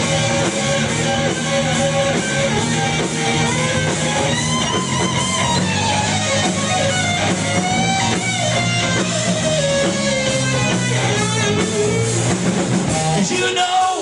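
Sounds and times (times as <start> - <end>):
electric guitar solo: 0.0 - 13.2
live rock band playing: 0.0 - 14.0.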